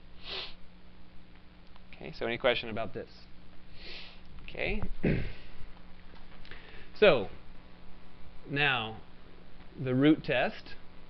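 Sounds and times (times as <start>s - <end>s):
faint electrical hum: 0.0s - 11.0s
man sniffing: 0.2s - 0.6s, 3.8s - 4.2s.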